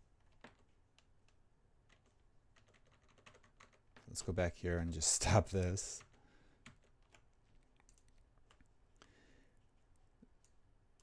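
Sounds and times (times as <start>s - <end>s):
computer mouse clicks: 5.6s - 9.1s.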